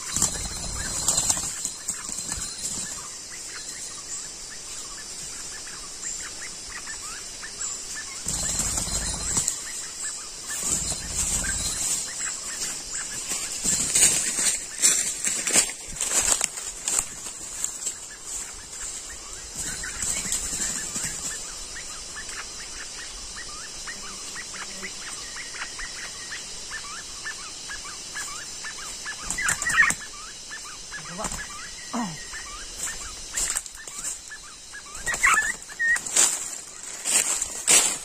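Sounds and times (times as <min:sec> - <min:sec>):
wing flapping: 0:00.0 - 0:03.9, 0:08.1 - 0:21.5, 0:29.0 - 0:30.1, 0:32.8 - 0:38.0
quail chirping: 0:00.0 - 0:15.1, 0:17.0 - 0:37.4.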